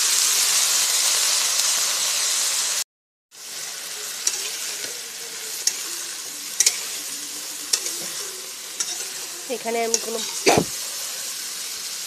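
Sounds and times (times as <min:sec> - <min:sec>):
vegetables sizzling in hot oil: 0:00.0 - 0:12.0.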